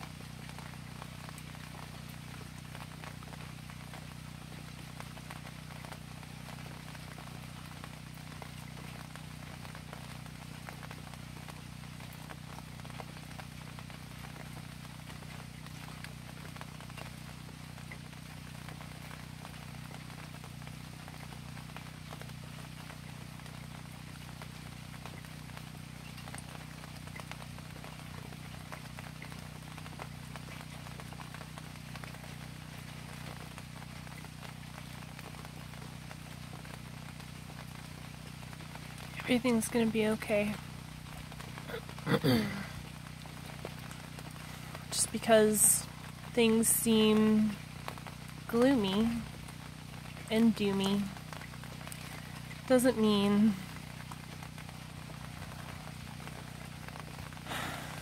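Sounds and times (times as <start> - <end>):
steady low hum: 0.0 - 58.0
steady rain falling: 0.0 - 58.0.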